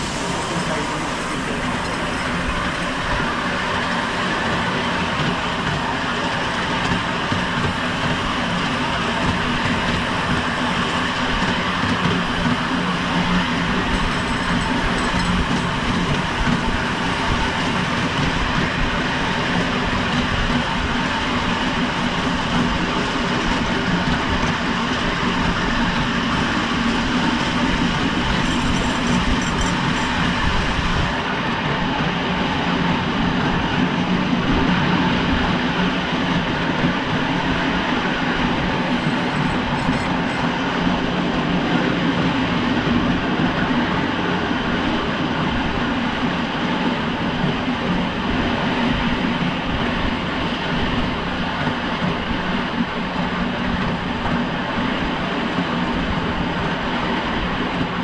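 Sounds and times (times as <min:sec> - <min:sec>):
train wheels running on rails: 0:00.0 - 0:58.0.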